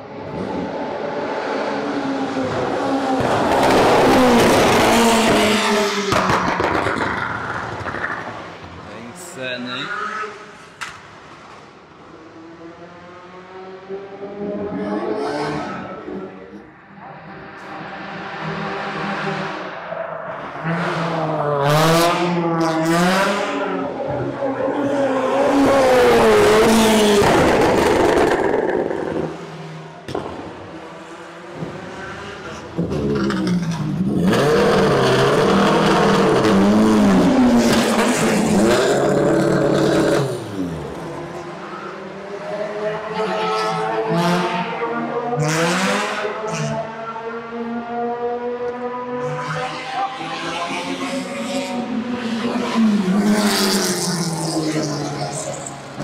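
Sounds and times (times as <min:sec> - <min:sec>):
race car engines passing: 0:00.0 - 0:56.0.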